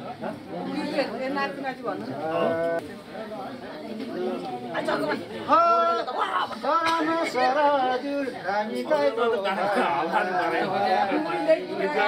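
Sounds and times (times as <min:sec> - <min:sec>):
people laughing: 0:05.8 - 0:07.6.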